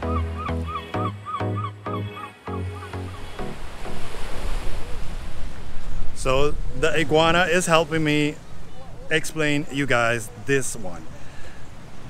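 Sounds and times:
rushing outdoor air and sea: 0.0 - 12.0.

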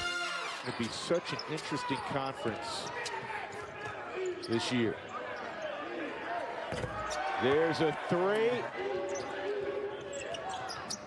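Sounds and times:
faint voices of players and crowd: 0.0 - 11.0.

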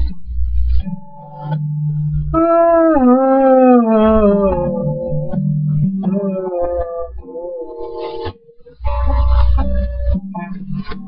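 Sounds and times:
low guitar notes: 0.0 - 11.0.

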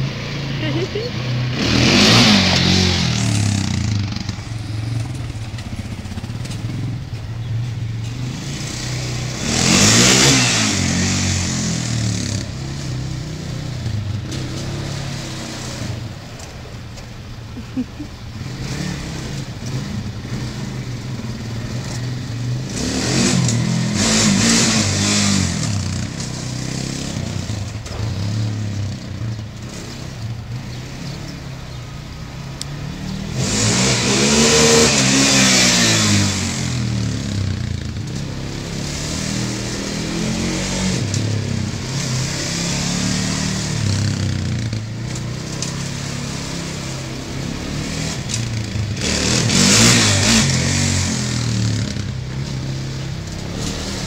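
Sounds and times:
quad engine revving: 0.0 - 7.2, 8.1 - 16.2, 17.5 - 54.0.

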